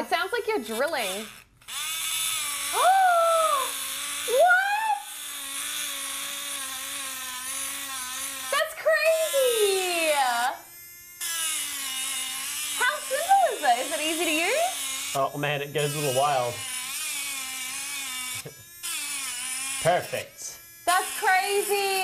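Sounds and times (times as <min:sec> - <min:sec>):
engraving pen buzzing: 0:00.0 - 0:22.0.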